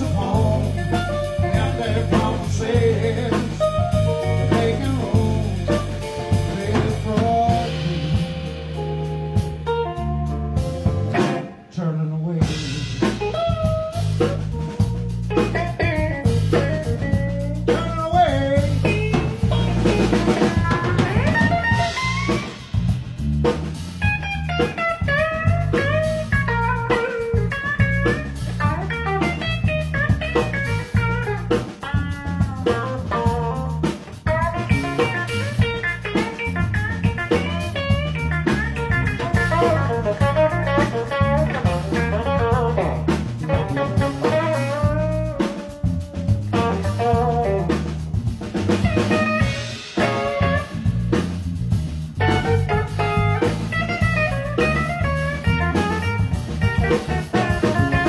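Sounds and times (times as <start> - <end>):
electric bass line: 0.0 - 11.7, 12.4 - 58.0
drum kit beat: 0.0 - 11.8, 12.4 - 58.0
electric guitar: 0.0 - 58.0.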